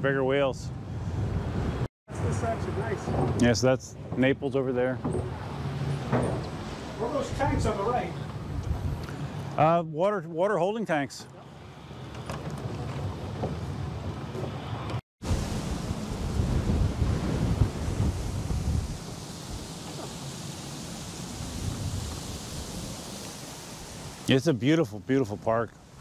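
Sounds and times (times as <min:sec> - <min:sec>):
wind buffeting microphone: 0:06.3 - 0:09.1, 0:15.2 - 0:20.2, 0:20.9 - 0:23.0.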